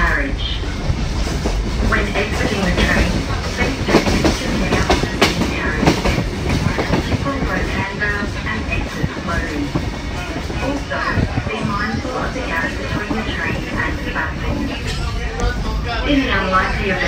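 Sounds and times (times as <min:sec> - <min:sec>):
train wheels rumbling: 0:00.0 - 0:17.0.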